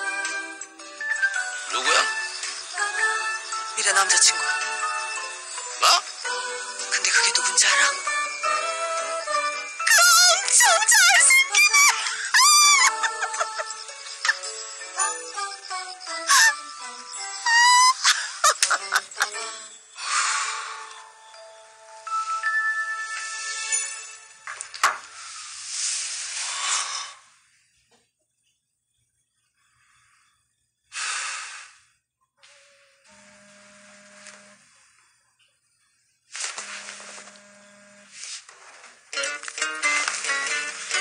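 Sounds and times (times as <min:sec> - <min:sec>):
light background music: 0:00.0 - 0:26.3, 0:38.5 - 0:41.0
high-pitched excited squeal: 0:09.8 - 0:14.5, 0:16.1 - 0:19.6
woman laughing: 0:11.8 - 0:14.4, 0:17.6 - 0:19.4
phone vibrating on wooden table: 0:32.4 - 0:35.0, 0:36.6 - 0:38.2.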